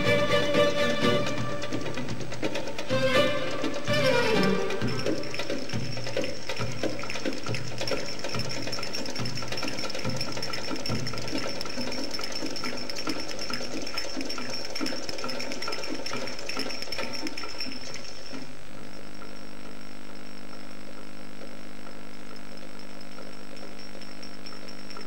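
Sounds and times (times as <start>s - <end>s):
belly-dance drum percussion: 0.0s - 18.0s
thin steady high tone: 0.0s - 25.0s.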